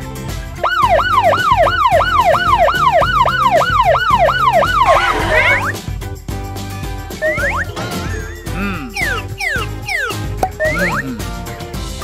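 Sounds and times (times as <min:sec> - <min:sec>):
upbeat background music: 0:00.0 - 0:12.0
police siren: 0:00.6 - 0:05.8, 0:07.2 - 0:07.7, 0:09.0 - 0:11.0.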